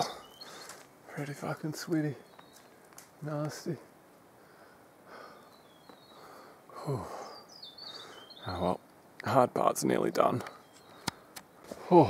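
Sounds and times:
person breathing heavily: 4.4s - 5.5s, 6.1s - 8.3s.

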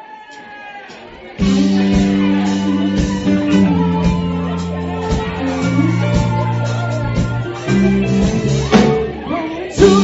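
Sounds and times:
rock band playing: 0.9s - 10.0s
electric guitar sustained notes: 1.4s - 9.0s.

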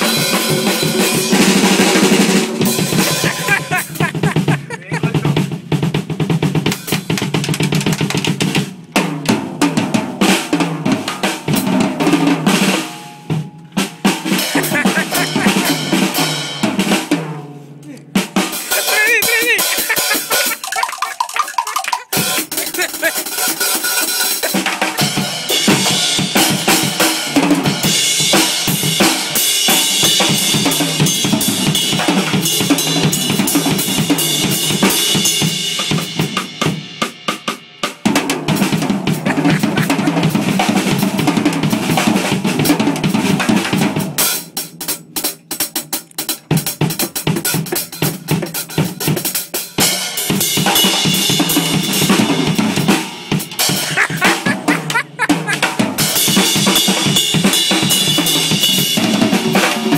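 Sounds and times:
fast drum kit solo: 0.0s - 17.5s, 18.2s - 59.9s.

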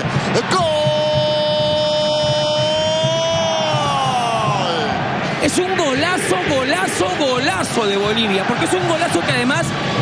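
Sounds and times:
commentator shouting goal: 0.3s - 9.7s.

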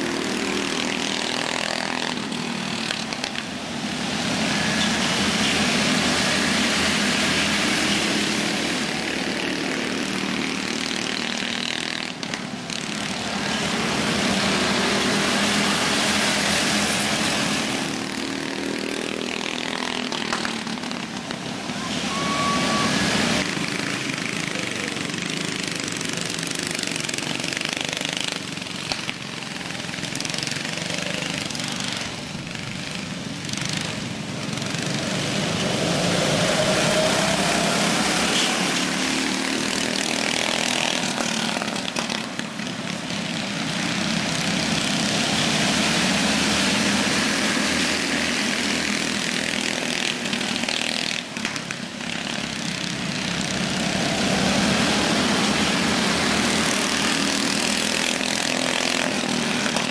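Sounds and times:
go-kart engines racing: 0.0s - 59.9s.

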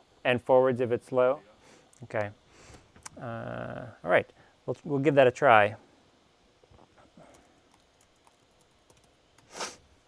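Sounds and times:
breathy hiss: 1.5s - 4.7s, 9.4s - 10.0s
typing on keyboard: 7.3s - 9.2s.

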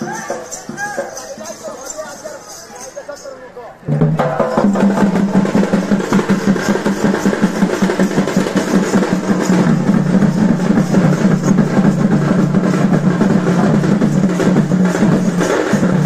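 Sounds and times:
fast drum and percussion beats: 0.0s - 16.0s.

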